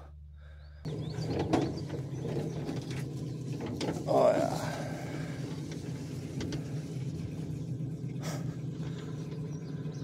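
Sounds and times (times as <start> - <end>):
small boat motor humming: 0.0 - 10.0.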